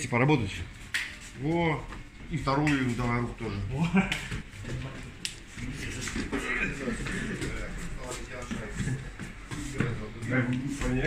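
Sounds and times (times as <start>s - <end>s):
people moving: 1.2s - 11.0s
indistinct background voices: 4.5s - 11.0s.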